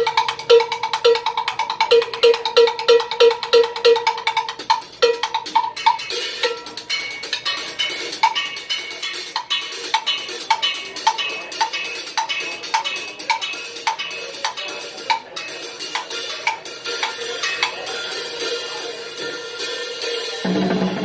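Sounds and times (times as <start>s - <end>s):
drum kit with cymbals: 15.6s - 21.0s
high-pitched drum strikes: 20.4s - 21.0s.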